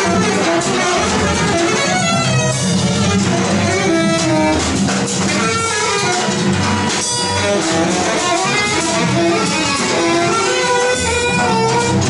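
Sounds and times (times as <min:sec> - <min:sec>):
cello: 0:00.0 - 0:12.0
drum and cymbal strikes: 0:00.0 - 0:12.0
saxophone: 0:00.0 - 0:12.0.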